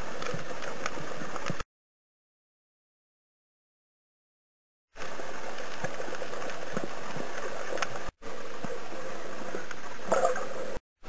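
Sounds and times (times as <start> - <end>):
faint underwater clicks: 0.0 - 1.6, 5.0 - 10.8.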